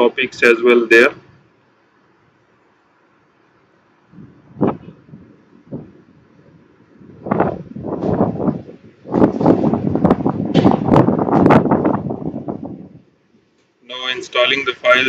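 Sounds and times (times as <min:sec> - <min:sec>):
wind buffeting microphone: 0:04.1 - 0:13.1.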